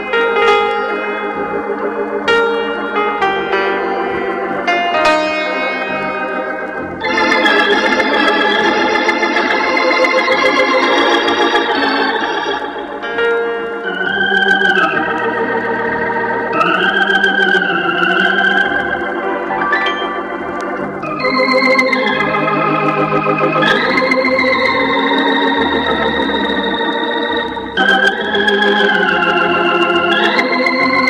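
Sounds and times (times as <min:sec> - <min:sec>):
organ playing sustained chords: 0:00.0 - 0:31.0
wavering organ melody: 0:00.0 - 0:31.0.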